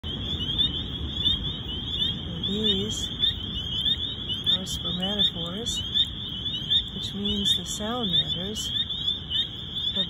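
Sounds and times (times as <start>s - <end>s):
frogs peeping chorus: 0.0s - 10.0s.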